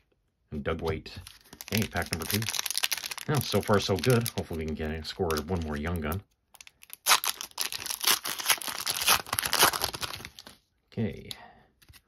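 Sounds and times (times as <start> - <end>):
foil wrapper tearing and crinkling: 1.4 - 10.6.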